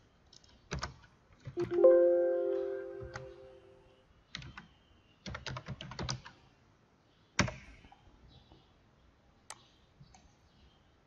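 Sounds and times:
laptop keyboard typing: 0:03.0 - 0:03.4, 0:04.4 - 0:06.4.

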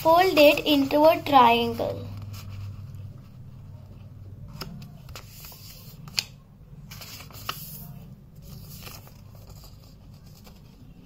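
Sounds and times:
paper rustling and creasing: 0:00.0 - 0:11.0.

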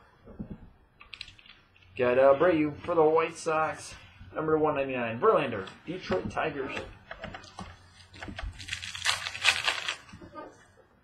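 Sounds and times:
cards clicking and rustling: 0:01.0 - 0:01.6, 0:05.6 - 0:10.2.

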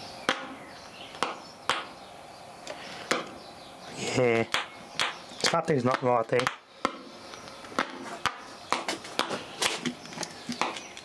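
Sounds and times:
steady low hiss: 0:00.0 - 0:11.0.

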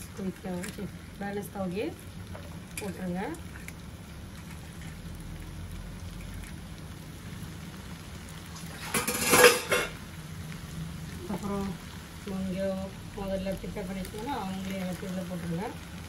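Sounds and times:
noodles frying in a wok: 0:00.0 - 0:16.0
dishes clattering: 0:08.8 - 0:10.0.

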